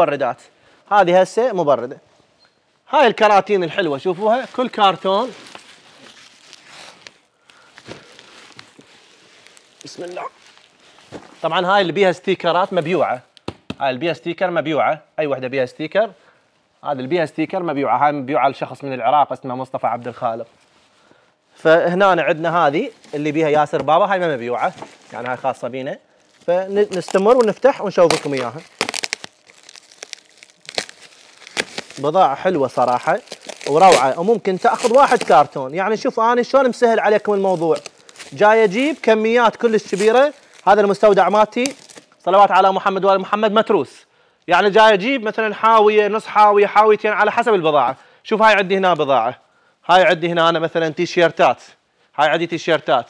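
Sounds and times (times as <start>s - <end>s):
wrapping rustling and scraping: 2.1s - 13.2s, 19.9s - 42.3s
plastic sack ripping: 4.0s - 11.5s, 26.2s - 35.8s, 36.6s - 42.1s.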